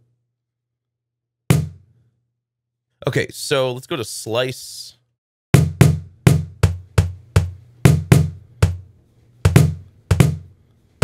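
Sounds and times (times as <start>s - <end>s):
cajon hit by hand: 5.6s - 10.5s.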